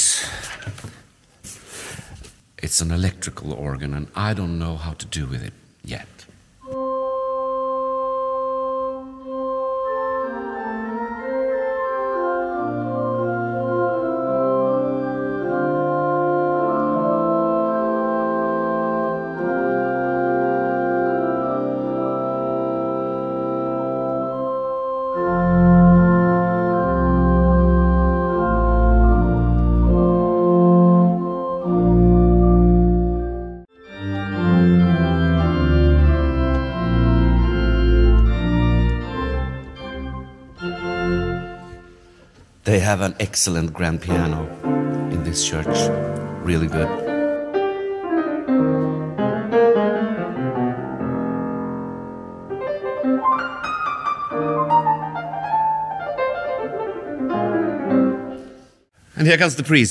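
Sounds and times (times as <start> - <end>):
electronic organ playing chords: 6.6 - 42.0.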